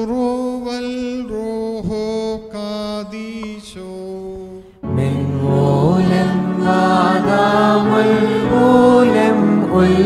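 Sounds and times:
person chanting: 0:00.0 - 0:10.0.

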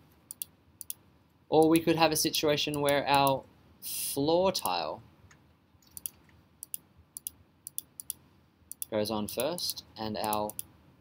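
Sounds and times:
computer mouse clicking: 0:00.3 - 0:01.0, 0:05.8 - 0:09.6, 0:10.2 - 0:10.7.

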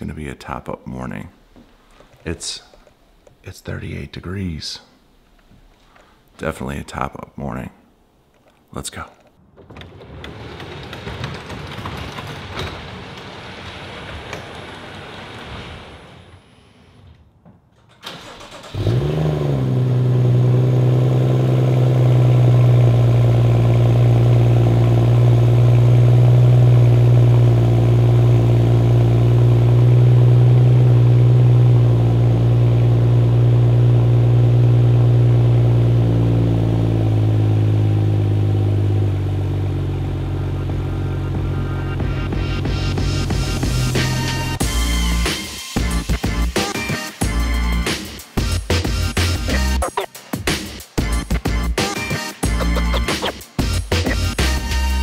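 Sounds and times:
garage door opener running: 0:09.4 - 0:46.6
car engine starting and idling: 0:17.8 - 0:50.1.

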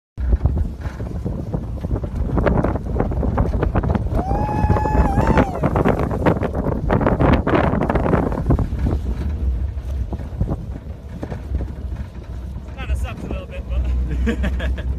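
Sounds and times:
vehicle engine rumble: 0:00.2 - 0:14.9
wind buffeting microphone: 0:00.2 - 0:14.9
rough knocks and rattles: 0:05.8 - 0:12.8.

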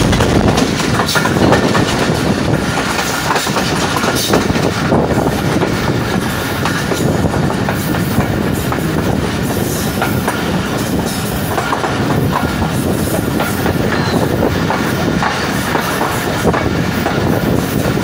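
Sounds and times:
wheels clattering over rail joints: 0:00.0 - 0:09.1
train coach rumble: 0:00.0 - 0:18.0.

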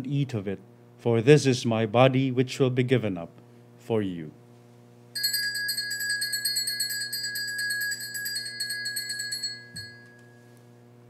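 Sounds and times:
altar bells ringing: 0:05.2 - 0:10.6.

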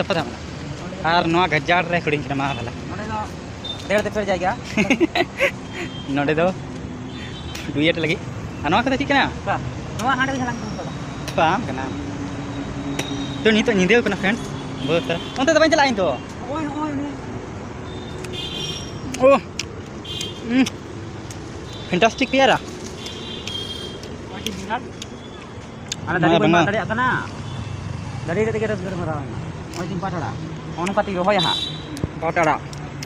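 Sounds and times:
traffic noise: 0:00.0 - 0:33.0.

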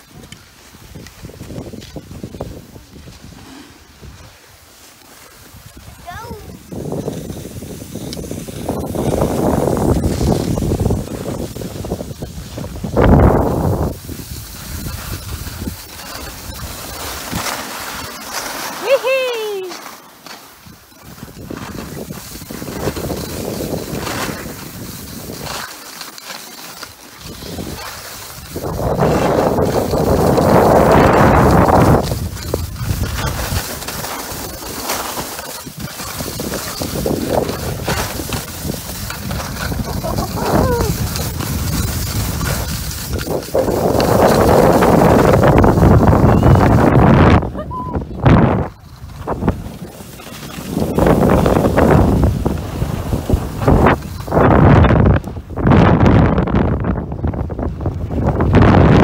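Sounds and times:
wind buffeting microphone: 0:00.0 - 0:04.6, 0:05.4 - 0:18.1, 0:20.6 - 0:25.6, 0:27.2 - 0:59.0
skis scraping over snow: 0:00.0 - 0:59.0
person crying out: 0:18.8 - 0:19.8, 0:40.0 - 0:41.0, 0:47.5 - 0:48.1.

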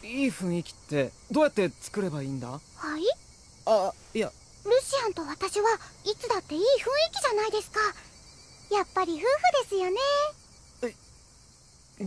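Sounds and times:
insects chirring: 0:00.0 - 0:12.0
girl speaking: 0:02.8 - 0:04.0, 0:04.6 - 0:08.1, 0:08.7 - 0:10.4.

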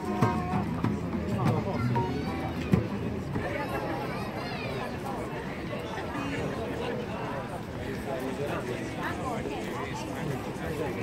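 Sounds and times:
djembe hand drum: 0:00.0 - 0:03.0
chatter of passers-by: 0:00.0 - 0:11.0.

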